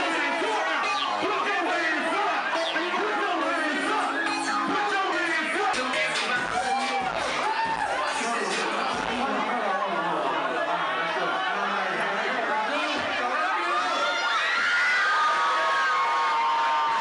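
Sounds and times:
crowd cheering and shouting: 0.0 - 17.0.

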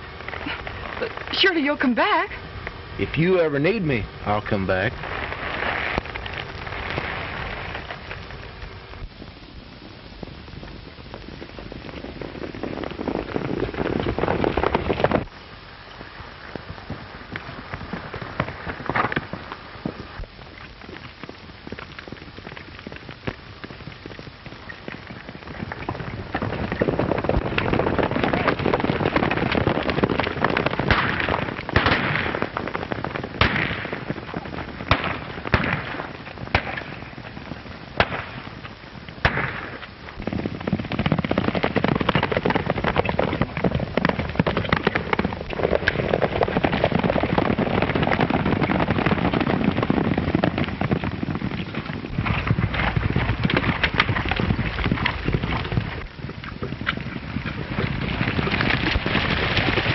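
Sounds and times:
horses galloping: 0.0 - 59.9
sharp gunshots: 30.9 - 32.6, 33.4 - 34.1, 34.9 - 37.0, 38.0 - 38.4, 39.2 - 39.8.

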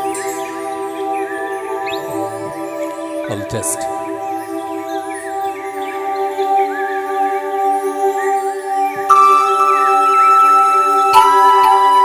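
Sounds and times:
bird-like chirps: 0.0 - 12.0
synth pad chord: 0.0 - 12.0.

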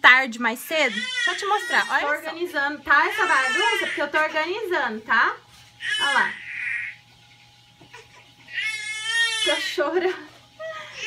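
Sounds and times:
baby crying: 0.9 - 2.1, 3.1 - 4.1, 5.8 - 7.0, 7.9 - 9.7.

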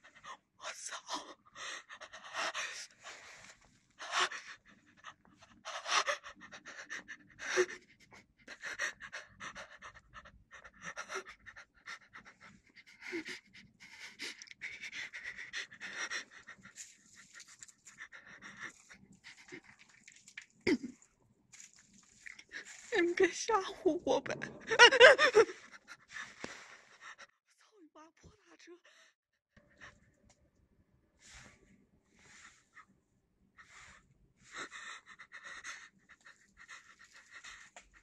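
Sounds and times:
person breathing close to microphone: 31.2 - 32.9.

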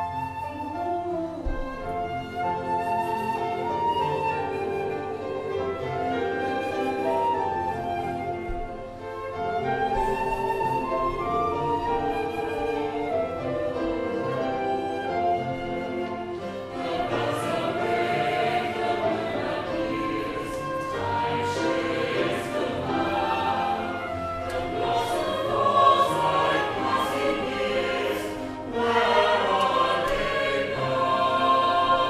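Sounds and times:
choir singing held notes: 9.4 - 32.0.

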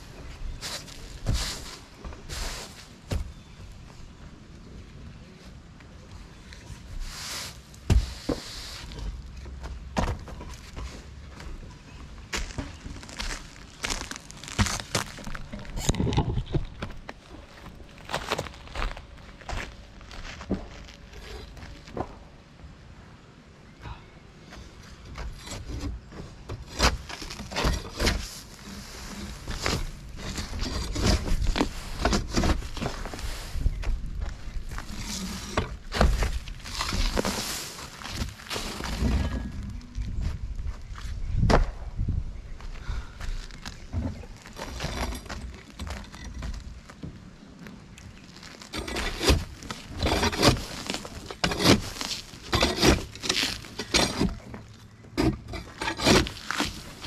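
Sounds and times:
pitchfork scraping through gravel: 0.5 - 3.0, 7.0 - 9.2, 26.7 - 33.8, 34.7 - 39.7, 48.2 - 54.4, 55.2 - 57.0
boots crunching on gravel: 12.2 - 21.9.

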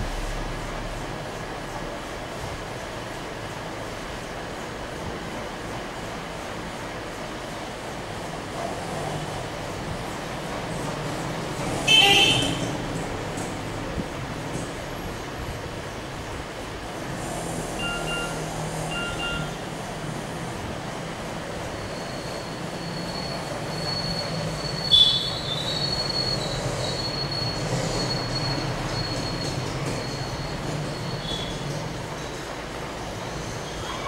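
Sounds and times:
steady background noise: 0.0 - 34.0
short beeps: 17.8 - 19.6.

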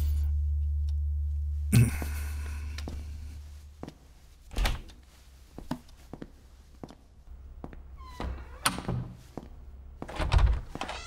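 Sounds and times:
door hinges creaking: 8.0 - 9.2, 10.1 - 11.0.

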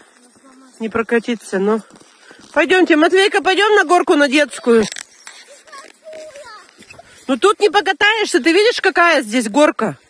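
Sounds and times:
distant children calling out: 4.6 - 7.3.

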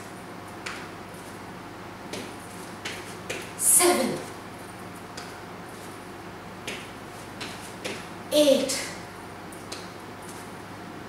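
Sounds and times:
steady low hum: 0.0 - 11.0
sneakers thumping on mat: 2.1 - 3.6, 6.6 - 8.1.

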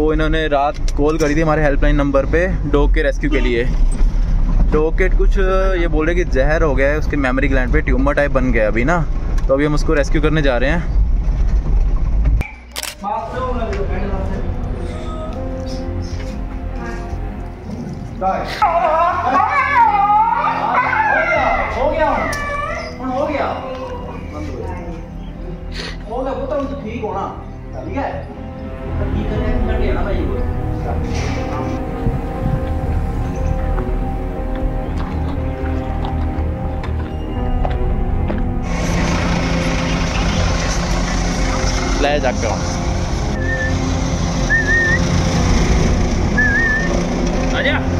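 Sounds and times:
dog whining and yelping: 20.4 - 23.0
vehicle engine idling: 31.4 - 47.9
short warbling whistle: 43.4 - 43.8, 44.5 - 45.0, 46.4 - 46.9.

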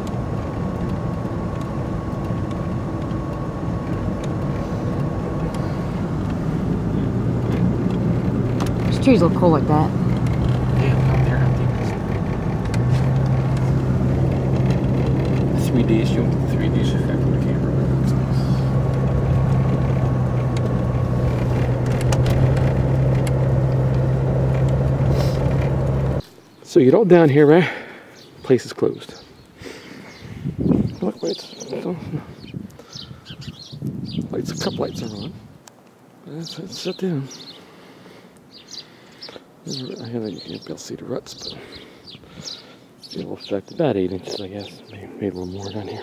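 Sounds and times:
small birds chirping: 0.0 - 22.5, 26.2 - 46.0
car engine and tyre drone: 0.0 - 26.3.

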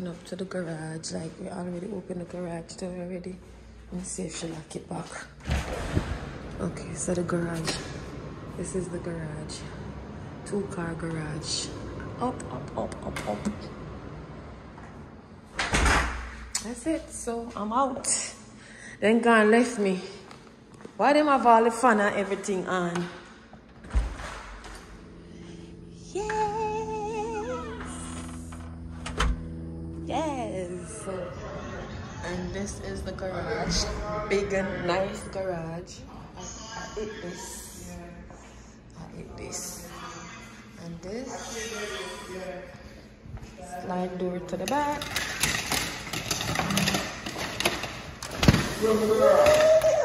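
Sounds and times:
faint low hum: 0.0 - 50.0
sliding glass door rolling: 5.4 - 16.3, 44.6 - 50.0.

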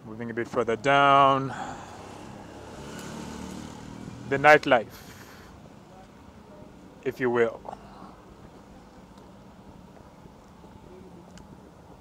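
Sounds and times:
vehicle engine low hum: 0.6 - 7.0.

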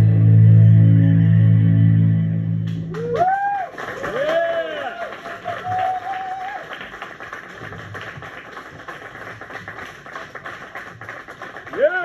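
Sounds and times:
backing music: 0.0 - 3.2
audience applause: 2.7 - 12.0.

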